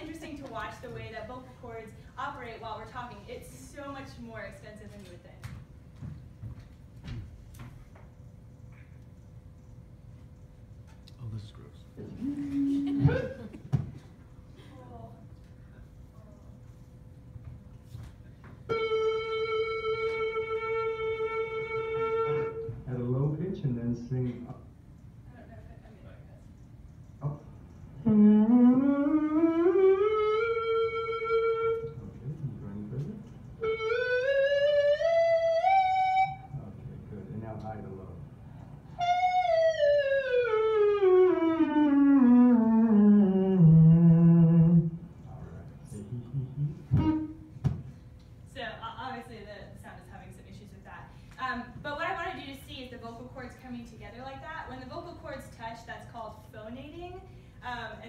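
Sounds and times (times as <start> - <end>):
person vocalizing steady note: 46.0 - 47.2.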